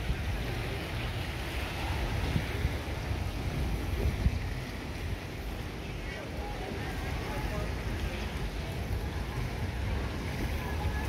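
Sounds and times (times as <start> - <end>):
sea surf rushing: 0.0 - 11.0
wind buffeting microphone: 0.0 - 11.0.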